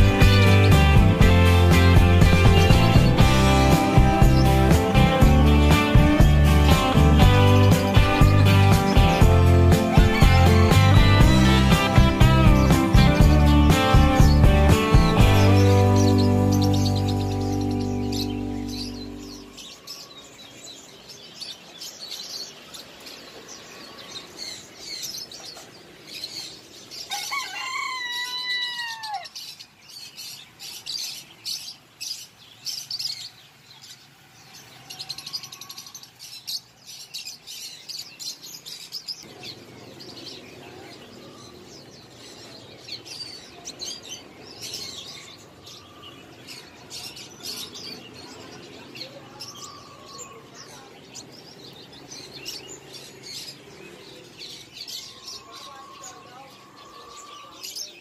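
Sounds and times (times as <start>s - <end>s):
small birds chirping: 0.0s - 58.0s.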